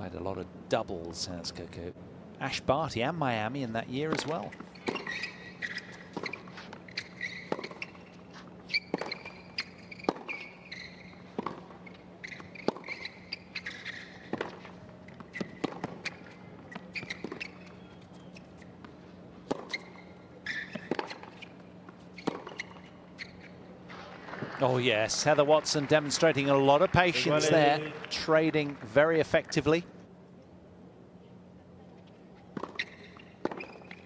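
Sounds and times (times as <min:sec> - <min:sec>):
shoes squeaking on hard court: 0:04.0 - 0:24.6, 0:32.0 - 0:34.0
tennis ball struck by racket: 0:07.2 - 0:08.0, 0:08.8 - 0:10.5, 0:11.3 - 0:17.6, 0:20.7 - 0:21.4, 0:22.2 - 0:22.8.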